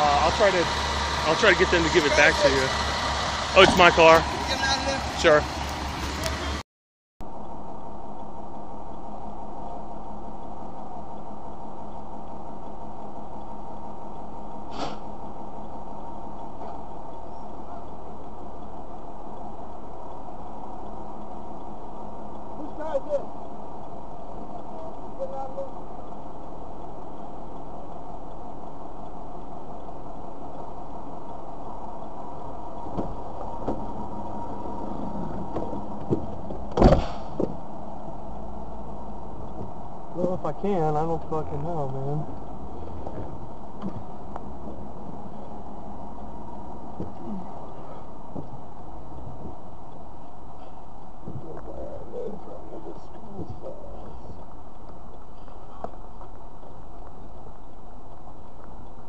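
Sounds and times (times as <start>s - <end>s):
car running heard from inside: 0.0s - 6.6s, 7.3s - 59.0s
sharp knock: 36.1s - 37.5s.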